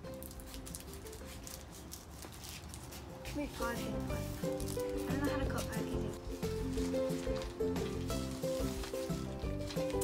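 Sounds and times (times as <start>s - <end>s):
scissors cutting plastic packaging: 0.0s - 10.0s
soft background music: 0.0s - 10.0s.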